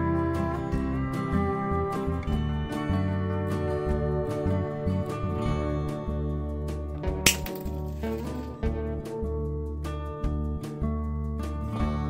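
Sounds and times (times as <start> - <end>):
soft instrumental music: 0.0 - 12.0.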